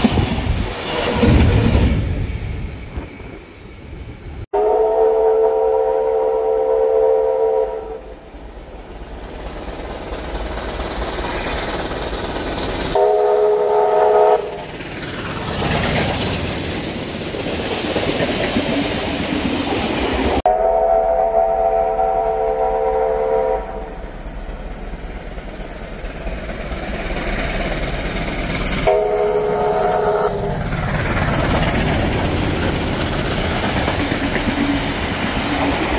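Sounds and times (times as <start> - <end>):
rumble of passing train: 0.0 - 35.9
steam locomotive whistle: 4.5 - 8.2, 12.9 - 14.6, 20.5 - 24.2, 28.8 - 30.6.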